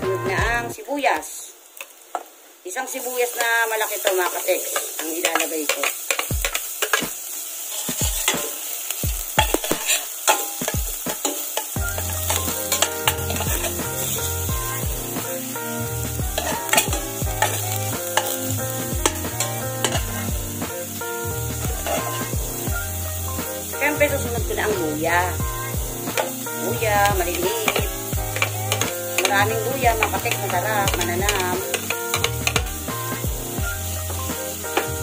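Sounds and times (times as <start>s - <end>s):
background music: 0.0s - 0.8s, 7.9s - 35.0s
onion and garlic sizzling in oil: 0.0s - 35.0s
metal spoon scraping a pot: 9.4s - 14.3s, 16.4s - 18.4s.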